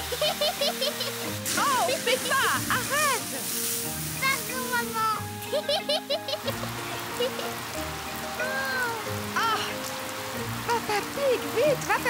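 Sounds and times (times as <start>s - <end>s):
background music: 0.0s - 12.0s
water spraying from garden hose: 0.0s - 12.0s.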